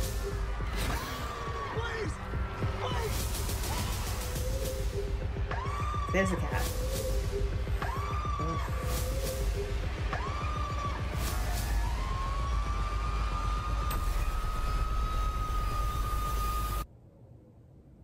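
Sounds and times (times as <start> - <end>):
horror trailer music: 0.0 - 16.9.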